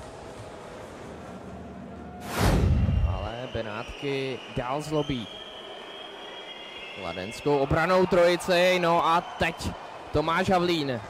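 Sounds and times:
ice arena background rumble: 0:00.0 - 0:03.4.

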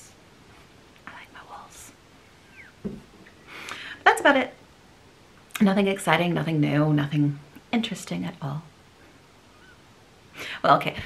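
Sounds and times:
breathy whispered voice: 0:01.0 - 0:02.0
low thump: 0:02.8 - 0:03.1.

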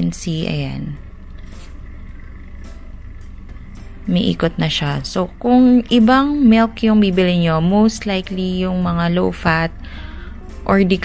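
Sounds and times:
milk frother humming: 0:00.0 - 0:11.0.

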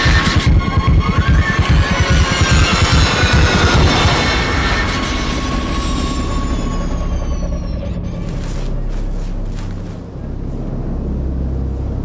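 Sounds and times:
heavy low throbbing pulse: 0:00.0 - 0:12.0
low rumble: 0:00.5 - 0:12.0.

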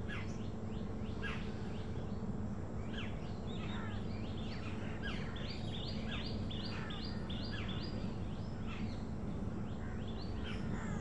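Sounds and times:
scattered bird calls: 0:00.0 - 0:11.0
steady low hum: 0:00.0 - 0:11.0.

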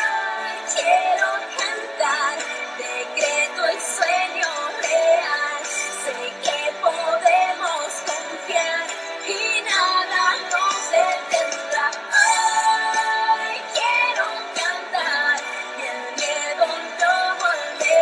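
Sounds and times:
person singing: 0:00.0 - 0:18.0.

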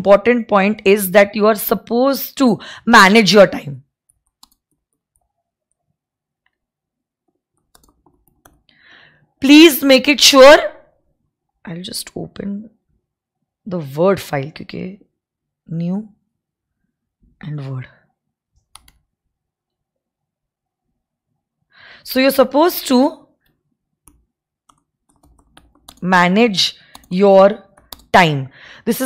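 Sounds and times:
keyboard keystroke clicks: 0:04.1 - 0:04.8, 0:07.6 - 0:08.7, 0:18.6 - 0:19.0, 0:26.9 - 0:27.1, 0:27.7 - 0:28.1.

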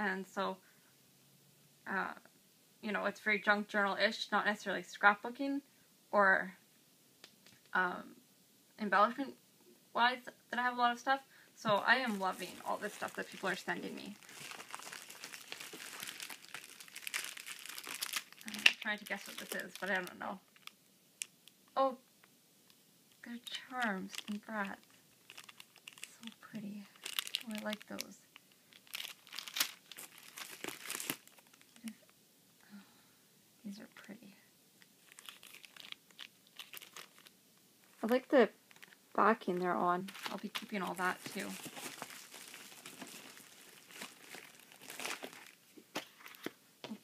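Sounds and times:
plastic packaging crinkling: 0:11.7 - 0:21.3, 0:23.2 - 0:32.1, 0:34.9 - 0:46.6.

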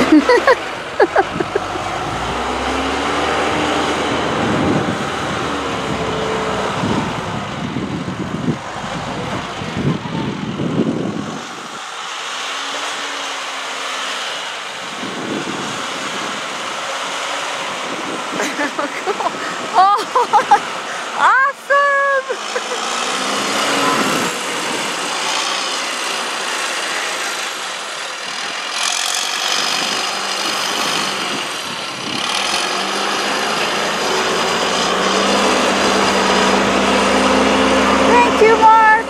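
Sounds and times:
diesel engine running under load: 0:00.0 - 0:39.0.

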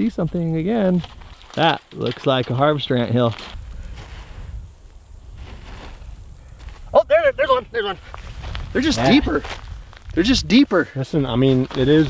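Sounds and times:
hands scraping dry dirt: 0:00.9 - 0:07.0, 0:07.8 - 0:10.2, 0:11.2 - 0:12.0
wind rumble on microphone: 0:03.5 - 0:12.0.

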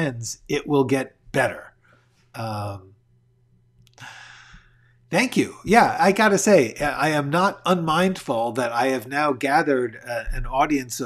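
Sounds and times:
man exhaling breathily: 0:04.0 - 0:04.7.

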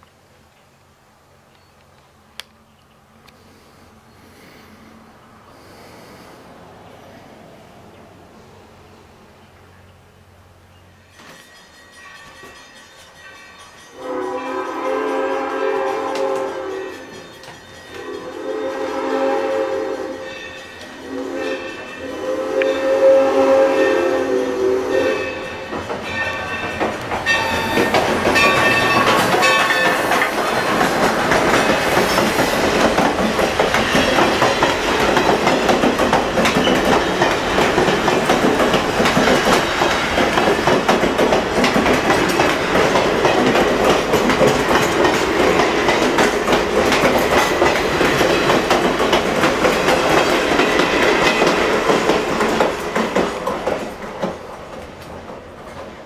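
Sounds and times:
locomotive bell ringing: 0:10.8 - 0:24.3, 0:24.9 - 0:30.4
train wheels clickety-clack: 0:11.1 - 0:21.1, 0:25.2 - 0:56.0
steam locomotive whistle: 0:13.9 - 0:17.3, 0:17.9 - 0:26.6, 0:27.3 - 0:30.7.

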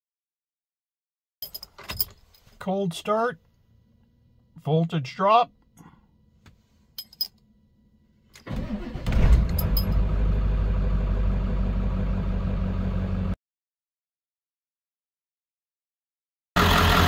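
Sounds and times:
diesel engine cranking: 0:08.4 - 0:12.8
diesel engine idling: 0:08.4 - 0:13.4, 0:16.6 - 0:17.0.

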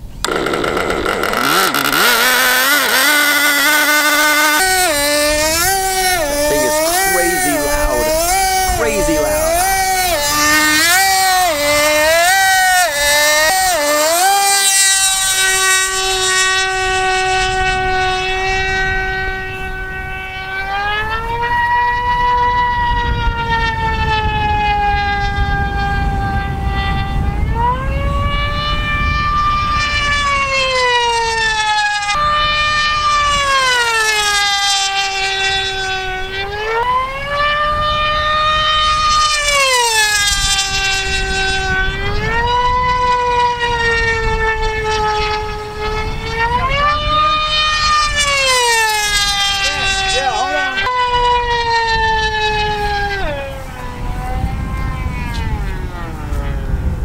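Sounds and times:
model plane engine whine: 0:00.0 - 0:57.0.

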